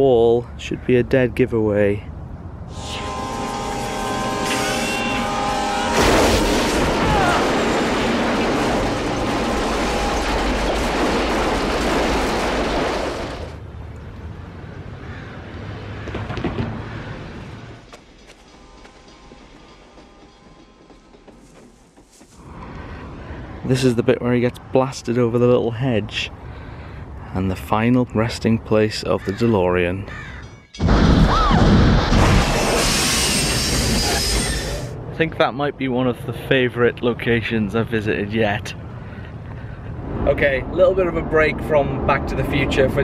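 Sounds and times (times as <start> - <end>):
locomotive air horn blaring: 2.7 - 7.6
train crash and rumble: 4.4 - 13.6, 16.1 - 23.1, 30.8 - 34.9.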